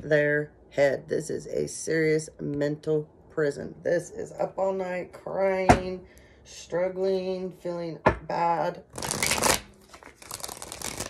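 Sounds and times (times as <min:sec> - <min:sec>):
cards shuffling: 0:08.9 - 0:11.0.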